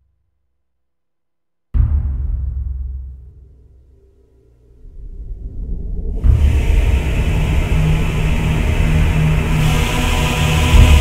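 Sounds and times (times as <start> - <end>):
soundtrack music: 2.9 - 11.0
deep loud engine rumble: 3.9 - 11.0
hiss: 6.2 - 11.0.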